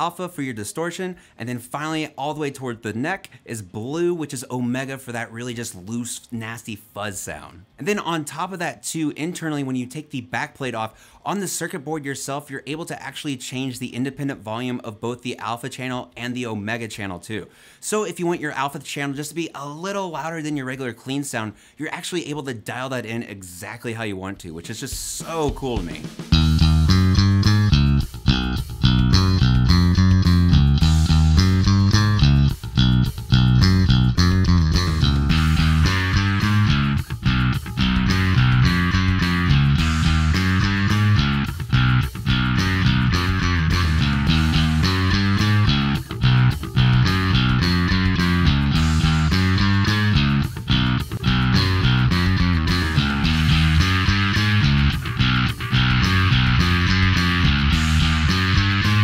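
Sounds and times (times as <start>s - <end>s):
distorted electric bass riff: 25.8s - 59.0s.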